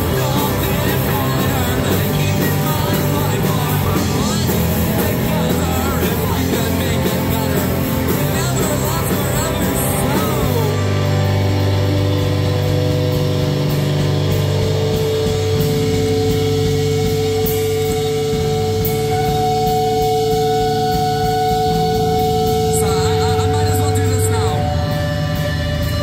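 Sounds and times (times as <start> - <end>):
person singing: 0.0 - 11.1, 22.7 - 25.5
punk rock band playing: 0.0 - 26.0.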